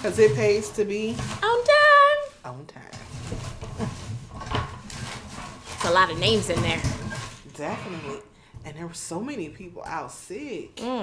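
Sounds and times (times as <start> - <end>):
woman speaking: 5.8 - 11.0.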